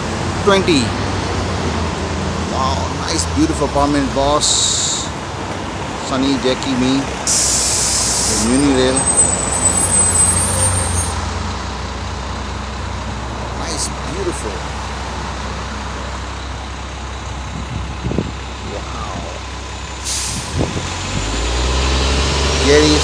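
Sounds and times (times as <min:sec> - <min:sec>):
bus engine humming: 0:00.0 - 0:23.0
street traffic noise: 0:00.0 - 0:23.0
brief hiss: 0:07.3 - 0:08.8, 0:20.0 - 0:20.6.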